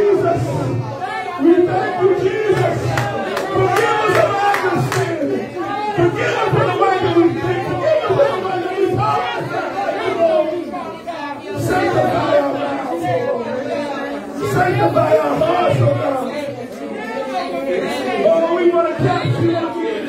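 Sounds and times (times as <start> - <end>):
man speaking over microphone: 0.0 - 10.2, 14.4 - 16.5, 18.2 - 20.0
many voices speaking: 0.0 - 20.0.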